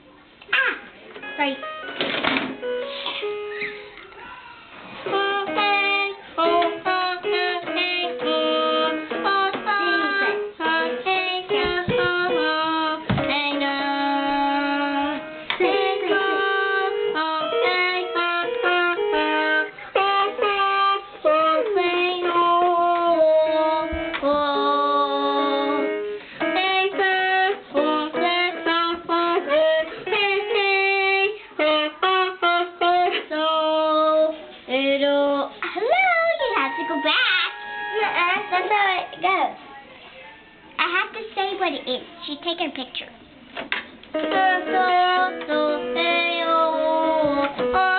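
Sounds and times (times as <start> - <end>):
toy electronic keyboard notes: 1.2 - 4.0, 5.1 - 33.0, 36.2 - 39.6, 44.1 - 47.9
girl singing into toy microphone: 5.0 - 39.6, 44.1 - 47.9.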